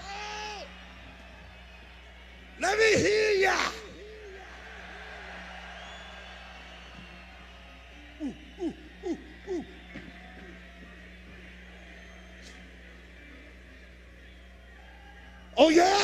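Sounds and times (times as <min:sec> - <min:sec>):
man yelling through echoing pa: 0:02.6 - 0:04.2.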